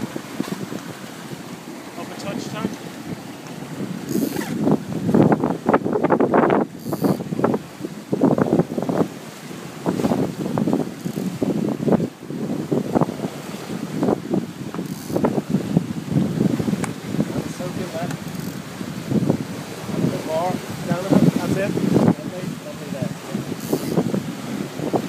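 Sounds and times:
water rushing along hull: 0:00.0 - 0:25.0
wind buffeting microphone: 0:00.0 - 0:25.0.

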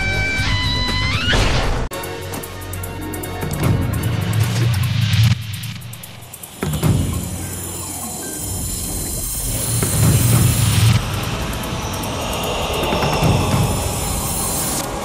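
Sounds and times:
ident music with pulsing beat: 0:02.0 - 0:15.0
noisy sweeps: 0:03.7 - 0:15.0
whooshing sound effects: 0:04.1 - 0:15.0.

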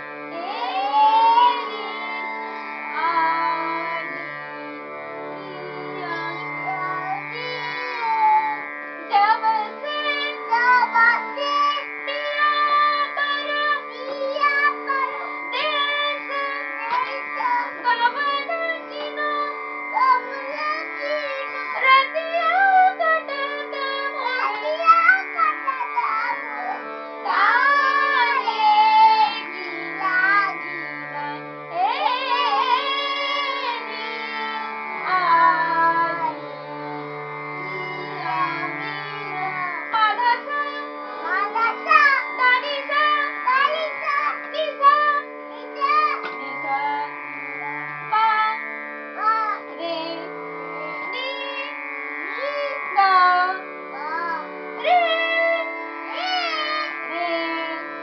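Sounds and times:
harmonium: 0:00.0 - 0:58.0
person singing ornamented melody: 0:00.0 - 0:58.0
steady drone: 0:00.0 - 0:58.0.

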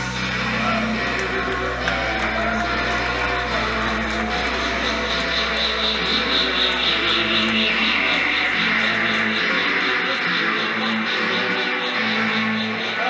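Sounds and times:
droning electric guitar band: 0:00.0 - 0:13.0.

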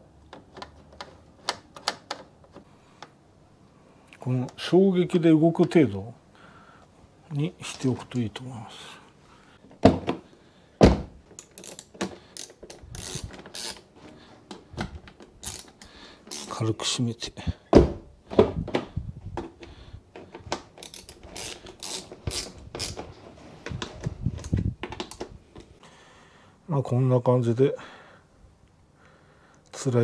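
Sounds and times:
dull thump: 0:10.8 - 0:11.2
ratchet wrench clicking: 0:11.4 - 0:13.8, 0:15.4 - 0:16.6, 0:20.8 - 0:23.0.

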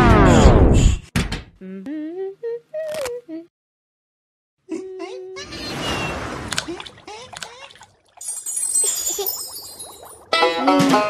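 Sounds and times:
person humming a tune: 0:01.6 - 0:03.5, 0:04.7 - 0:05.5.

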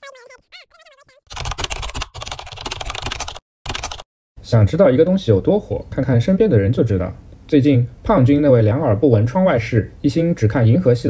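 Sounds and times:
rapid typing-like clicks: 0:01.3 - 0:04.0.

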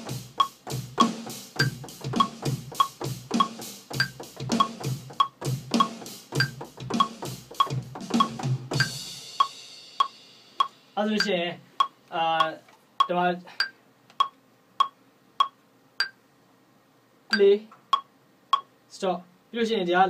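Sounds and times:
electronic drum beat: 0:00.0 - 0:12.6
metronome clicking: 0:00.3 - 0:16.2, 0:17.3 - 0:18.7.

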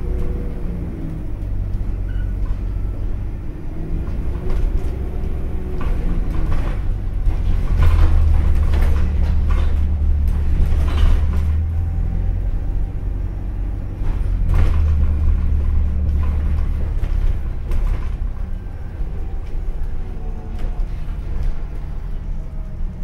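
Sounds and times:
bus engine and road rumble: 0:00.0 - 0:23.0
deep engine drone: 0:00.0 - 0:23.0
bus body knocks and rattles: 0:01.3 - 0:23.0.

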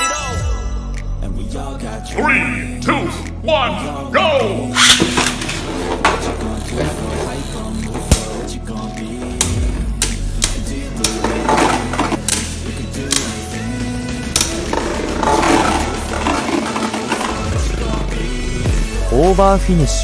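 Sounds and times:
music with a beat: 0:00.0 - 0:20.0
spinning tops whirring: 0:04.8 - 0:08.9
tops clacking together: 0:09.3 - 0:13.5, 0:14.2 - 0:17.5.

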